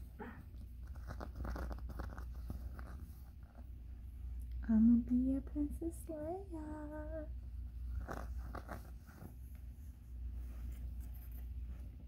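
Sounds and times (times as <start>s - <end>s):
fabric rustling: 7.4s - 12.0s.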